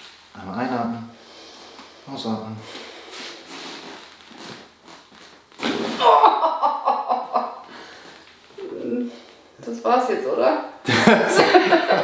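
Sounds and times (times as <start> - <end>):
person crying out: 6.0 - 6.5.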